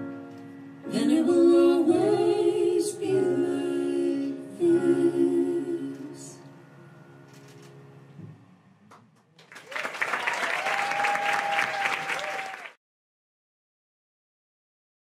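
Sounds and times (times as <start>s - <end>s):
audience applause and cheering: 9.4s - 12.8s.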